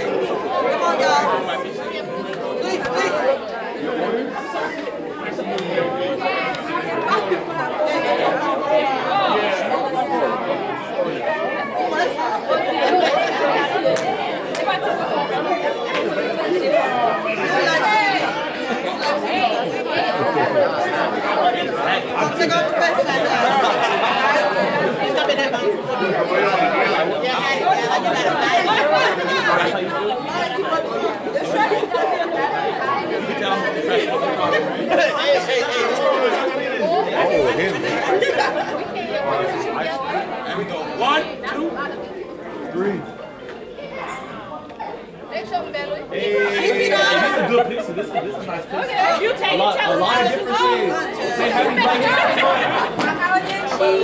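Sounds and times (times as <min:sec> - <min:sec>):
crowd chatter in large room: 0:00.0 - 0:54.0.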